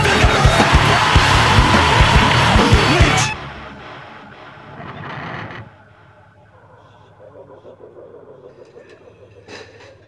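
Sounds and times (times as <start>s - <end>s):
rock band recording: 0.0s - 6.7s.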